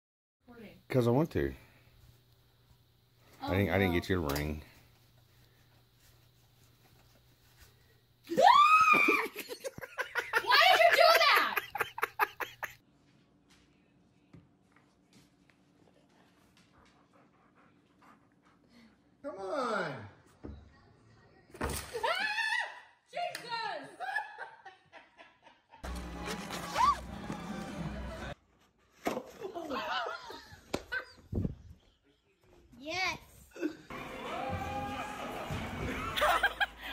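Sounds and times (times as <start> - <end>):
rising cry: 8.3 - 9.4, 26.5 - 28.1, 33.6 - 36.4
woman squealing: 8.3 - 9.4, 26.7 - 27.0
woman shrieking and laughing: 8.3 - 12.8, 22.0 - 23.0, 26.7 - 27.0
music: 25.8 - 28.4
noisy crowd: 33.9 - 36.6.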